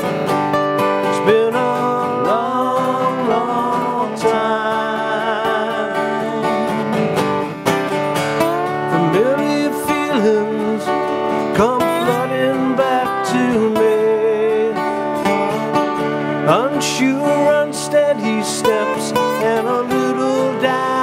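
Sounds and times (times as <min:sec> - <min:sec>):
acoustic guitar lead line: 0:00.0 - 0:21.0
acoustic guitar strumming chords: 0:00.0 - 0:21.0.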